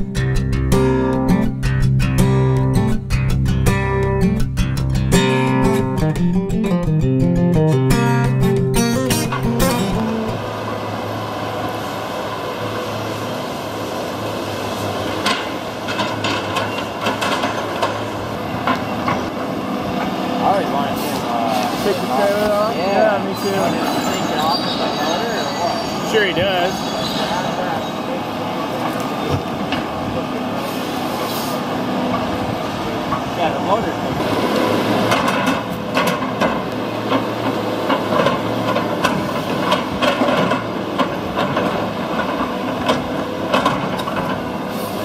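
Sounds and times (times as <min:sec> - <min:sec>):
plucked guitar music: 0:00.0 - 0:10.6
diesel engine and hydraulics: 0:08.8 - 0:45.0.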